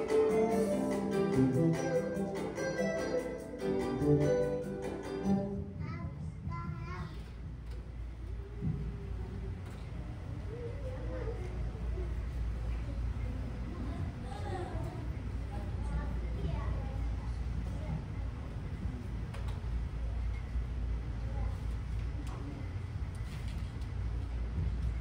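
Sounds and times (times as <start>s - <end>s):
keyboard accompaniment: 0.0s - 5.7s
low steady hum: 0.0s - 25.0s
faint voices talking: 5.6s - 23.1s.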